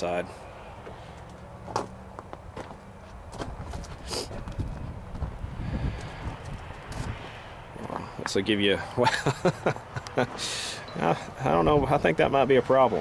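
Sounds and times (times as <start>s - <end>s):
footsteps on gravel: 0.8s - 8.4s.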